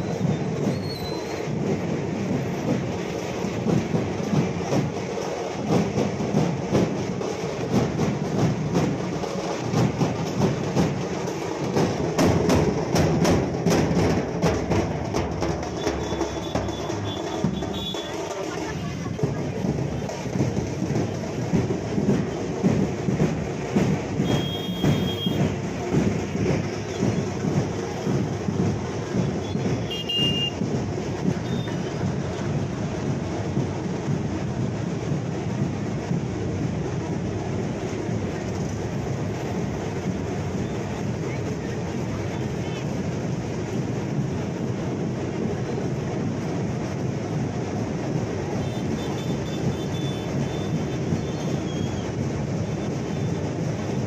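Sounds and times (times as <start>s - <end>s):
rapid loud drumming: 0.0s - 54.0s
crowd voices: 15.8s - 34.0s, 36.9s - 45.8s.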